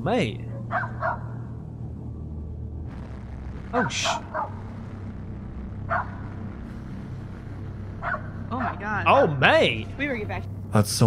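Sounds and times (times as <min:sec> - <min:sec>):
steady low rumble: 0:00.0 - 0:11.0
dog barking: 0:00.6 - 0:01.4, 0:04.1 - 0:04.6, 0:05.9 - 0:06.2, 0:08.0 - 0:08.3.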